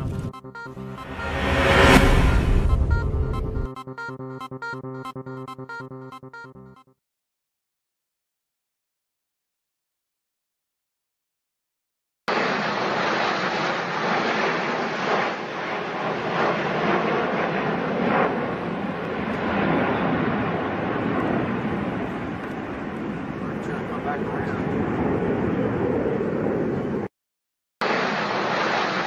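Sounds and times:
jet engine noise: 0.0s - 3.7s, 12.3s - 27.1s, 27.8s - 29.0s.

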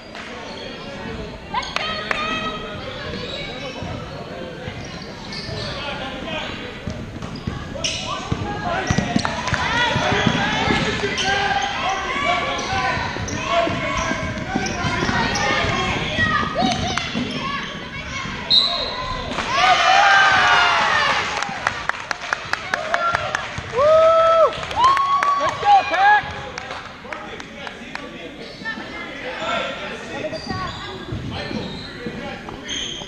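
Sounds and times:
voices of players and spectators: 0.0s - 33.0s.

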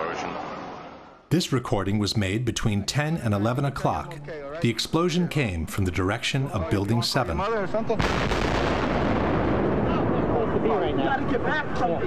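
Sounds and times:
man talking: 1.3s - 8.0s
explosion rumble: 8.0s - 11.7s.

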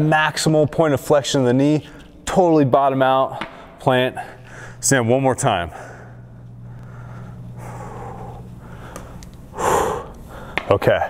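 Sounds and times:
steady low hum: 0.0s - 11.0s
person breathing hard: 4.2s - 4.8s, 5.7s - 10.7s.

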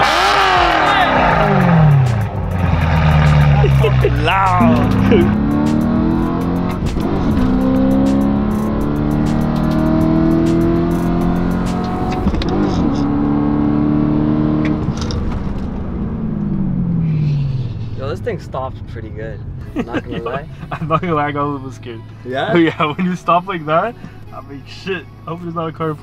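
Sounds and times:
car engine accelerating hard: 0.0s - 24.2s.

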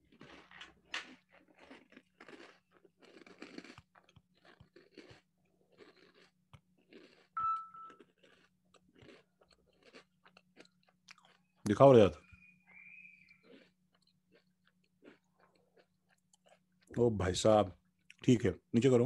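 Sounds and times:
biscuit crunching and chewing: 0.0s - 17.1s
brief clear tone: 7.4s - 8.0s.

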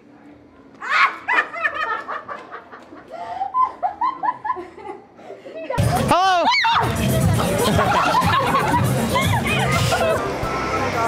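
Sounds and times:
music: 5.8s - 11.0s
woman laughing: 7.3s - 10.2s.

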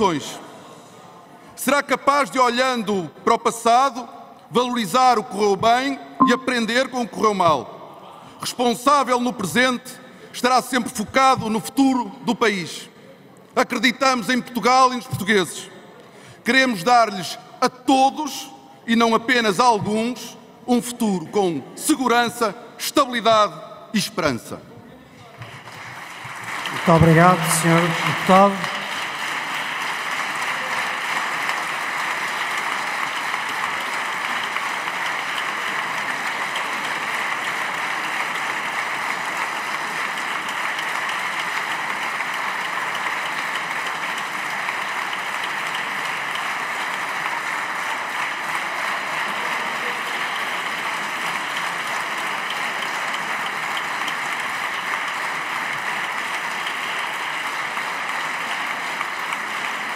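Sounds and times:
crowd applauding: 25.3s - 59.9s.

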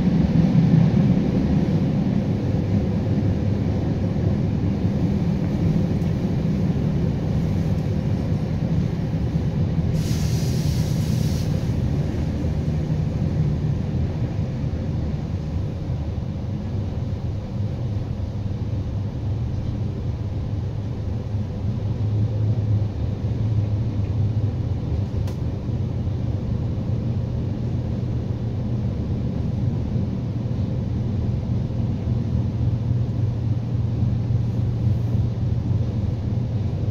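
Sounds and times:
train rumble inside carriage: 0.0s - 36.9s
faint click: 25.2s - 25.4s.

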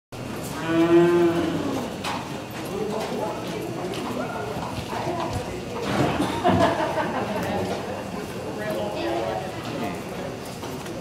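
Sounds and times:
cow mooing: 0.5s - 1.9s.

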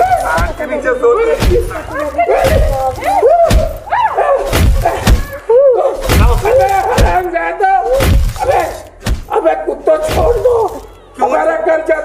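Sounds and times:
dull thumps of blows: 0.0s - 0.7s, 1.3s - 5.4s, 6.0s - 7.3s, 7.9s - 9.4s, 10.0s - 10.8s.

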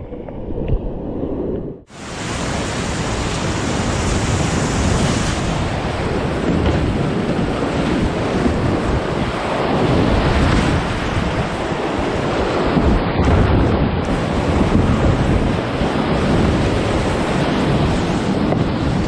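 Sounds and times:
water and wind buffeting microphone: 0.0s - 19.0s.

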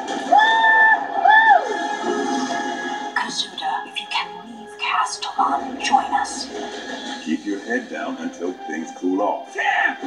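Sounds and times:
trailer music with sliding held tones: 0.0s - 10.0s.

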